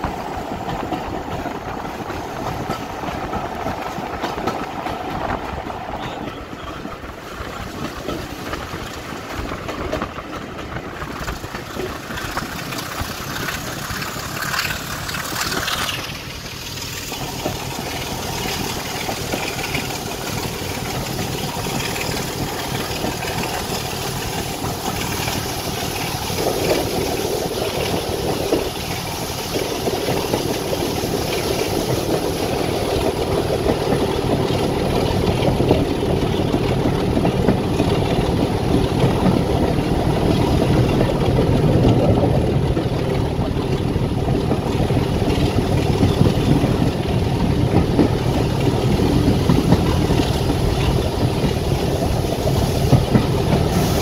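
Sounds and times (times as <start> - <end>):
diesel locomotive engine running: 0.0 - 54.0.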